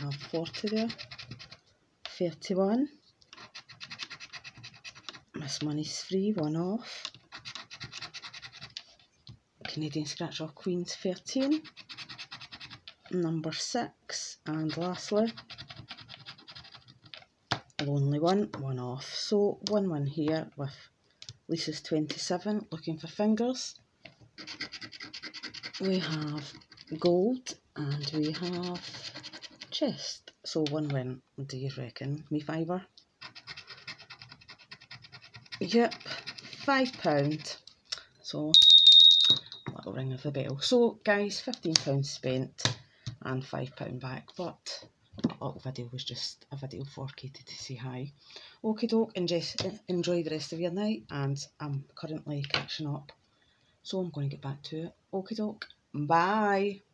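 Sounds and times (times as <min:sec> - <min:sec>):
scratcher scraping a scratchcard: 0:00.0 - 0:01.6, 0:03.3 - 0:05.3, 0:07.1 - 0:09.0
scratching a scratchcard: 0:00.0 - 0:01.6, 0:03.3 - 0:05.7, 0:07.0 - 0:09.0, 0:11.2 - 0:13.1, 0:14.5 - 0:17.3, 0:24.4 - 0:27.0, 0:27.8 - 0:29.8, 0:33.2 - 0:37.6.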